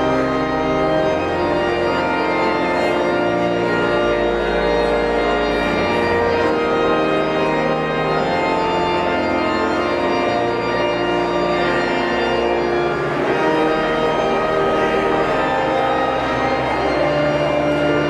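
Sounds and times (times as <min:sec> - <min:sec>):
organ chords over bass line: 0:00.0 - 0:18.0.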